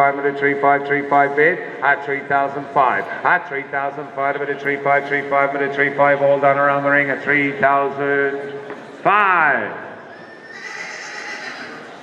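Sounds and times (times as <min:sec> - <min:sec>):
horse whinnying: 0:10.1 - 0:12.0.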